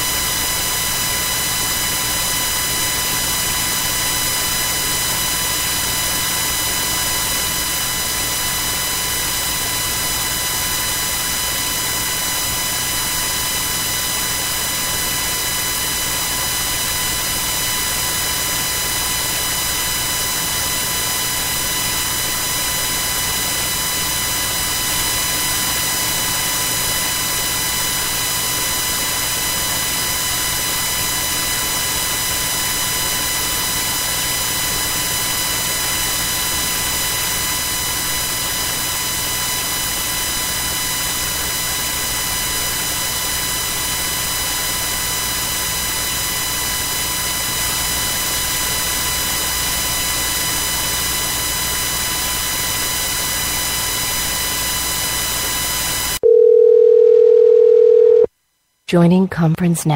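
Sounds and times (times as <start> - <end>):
phone line hiss with buzz: 0.0 - 58.3.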